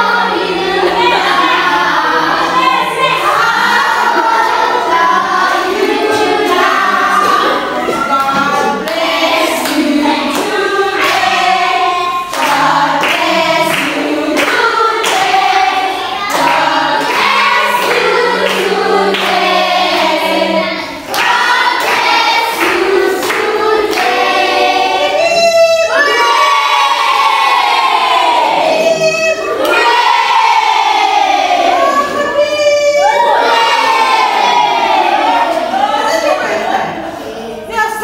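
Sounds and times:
choir singing: 0:00.0 - 0:37.7.

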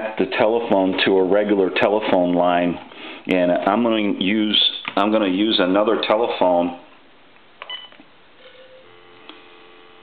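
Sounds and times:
telephone dial tone: 0:08.4 - 0:10.0.

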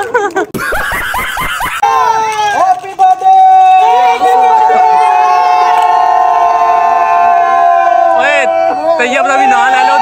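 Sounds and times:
children cheering: 0:01.5 - 0:10.0.

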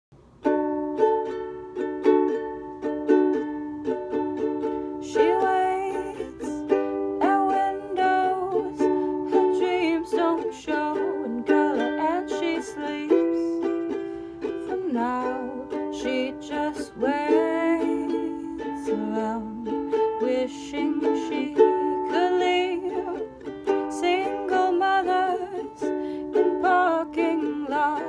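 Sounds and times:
ukulele strumming chords: 0:00.2 - 0:28.0
person singing: 0:01.0 - 0:28.0.

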